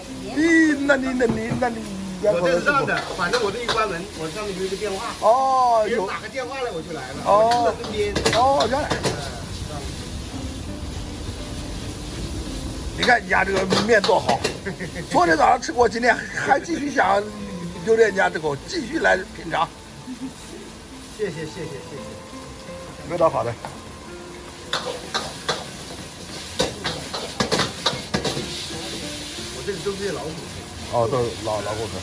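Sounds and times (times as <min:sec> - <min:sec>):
gas flame hissing: 0:00.0 - 0:32.0
noodles sizzling in wok: 0:00.0 - 0:32.0
metal spatula clanking on wok: 0:13.0 - 0:14.8, 0:24.7 - 0:28.6.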